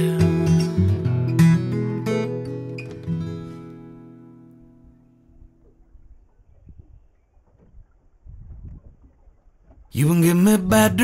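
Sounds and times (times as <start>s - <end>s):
wind buffeting microphone: 4.8s - 10.0s.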